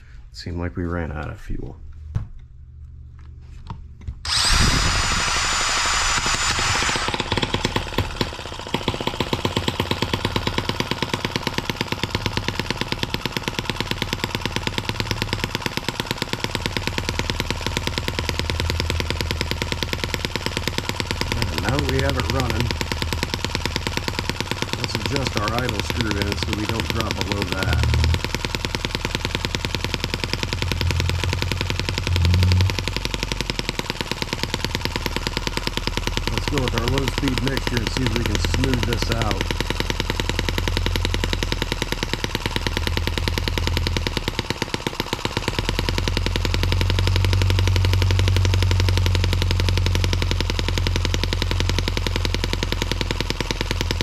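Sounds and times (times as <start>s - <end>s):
cordless drill spinning: 4.2s - 54.0s
model engine running: 4.3s - 54.0s.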